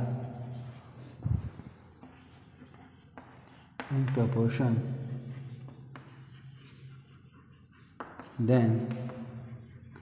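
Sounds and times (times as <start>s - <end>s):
chalk scratching on a chalkboard: 0.0s - 1.2s, 2.0s - 10.0s.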